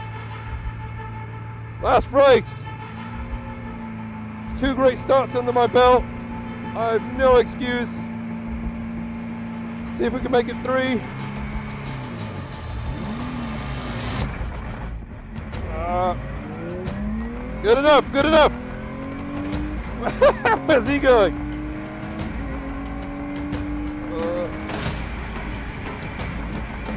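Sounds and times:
car engine idling: 0.0 - 26.9
man's voice: 1.8 - 2.7, 4.5 - 6.0, 6.7 - 8.1, 10.0 - 11.1, 15.6 - 16.2, 17.6 - 18.6, 20.0 - 21.4, 24.1 - 24.7.

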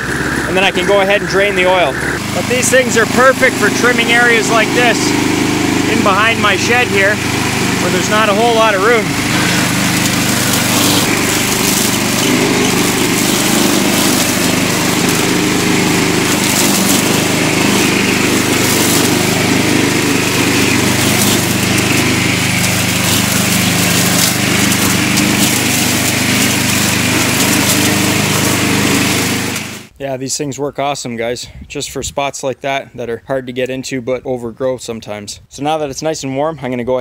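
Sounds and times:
string trimmer engine running: 0.0 - 29.9
trimmer line cutting grass: 0.0 - 29.9.

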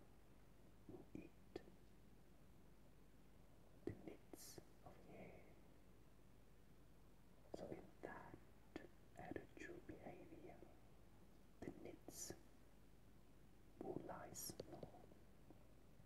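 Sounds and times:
faint whispering: 0.8 - 1.9, 3.7 - 5.7, 7.4 - 10.9, 11.6 - 12.5, 13.8 - 15.7.

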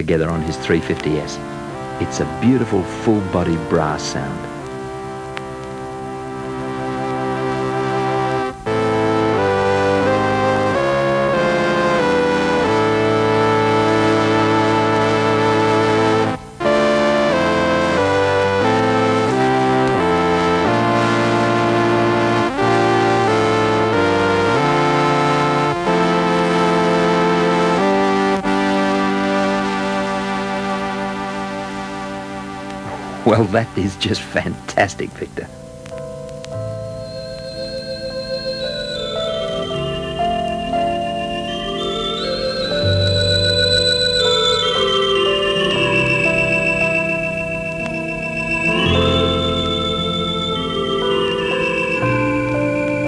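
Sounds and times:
stylus synthesizer playing chords: 0.0 - 53.0.

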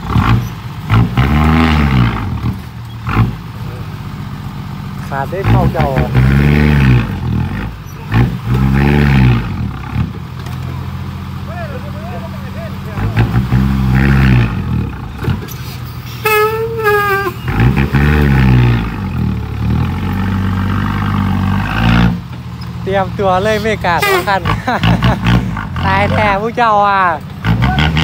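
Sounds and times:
diesel truck engine revving: 0.0 - 28.0.

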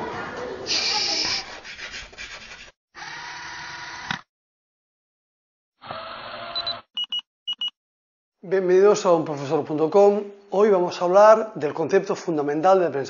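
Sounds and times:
chalk scratching on blackboard: 0.7 - 2.8.

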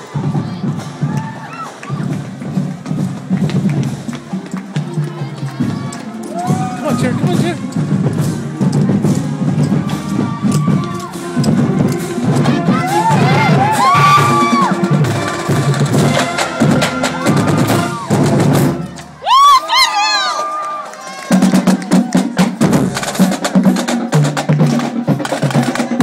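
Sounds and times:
marching drumline playing: 0.0 - 19.7, 21.2 - 26.0.

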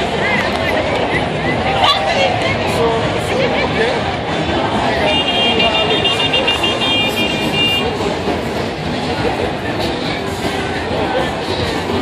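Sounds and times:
crowd chatter: 0.0 - 12.0
street noise: 0.0 - 12.0.

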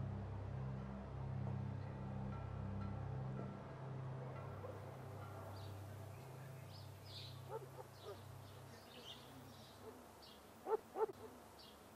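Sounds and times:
low hum: 0.0 - 10.0
birds chirping: 4.6 - 11.9.

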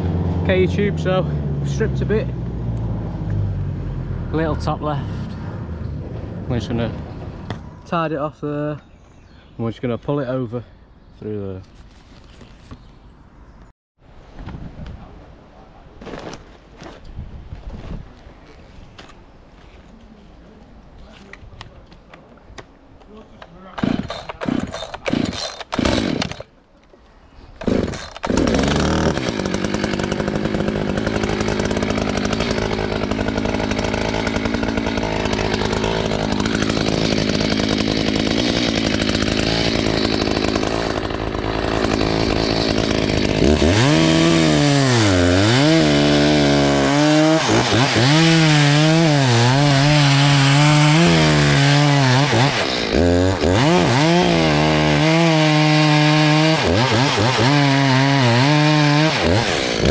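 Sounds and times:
chainsaw cutting wood: 23.7 - 26.5, 27.6 - 59.9.

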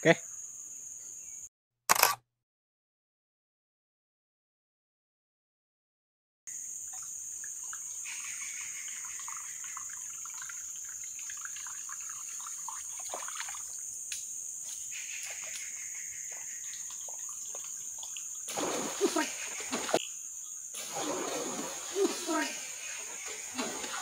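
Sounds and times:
insects droning: 0.0 - 1.5, 6.5 - 24.0
water trickling and splashing: 6.5 - 24.0.

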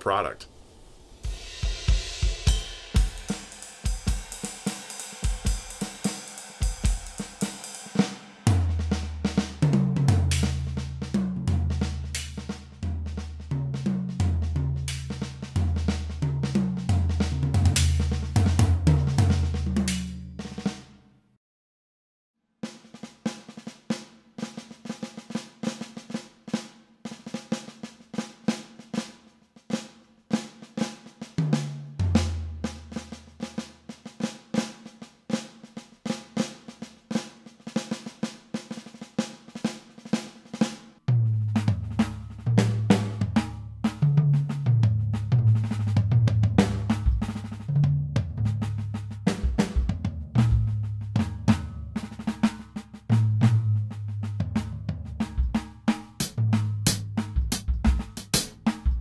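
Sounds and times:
electronic drums snare rolls: 0.0 - 20.7, 41.4 - 59.0.

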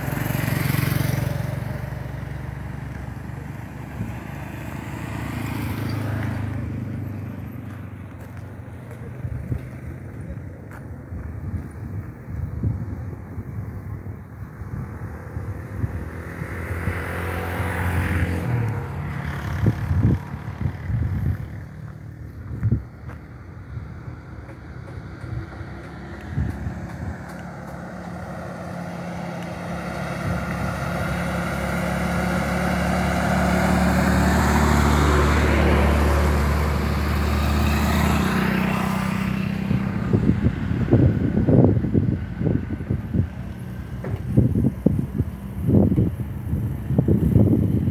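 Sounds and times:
bus engine passing: 0.0 - 47.9
wind buffeting microphone: 7.8 - 47.9.

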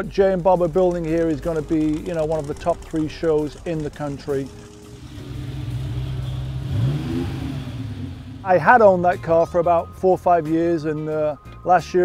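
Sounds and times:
car engine low hum: 0.6 - 9.4.

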